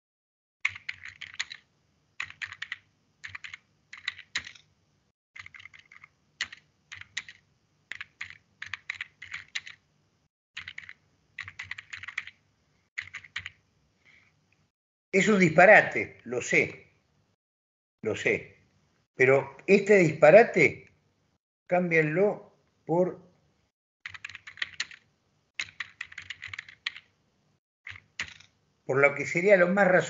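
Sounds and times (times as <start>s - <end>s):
computer keyboard typing: 0.6s - 4.7s, 5.4s - 9.8s, 10.6s - 12.4s, 13.0s - 13.6s, 24.0s - 27.1s, 27.8s - 28.5s.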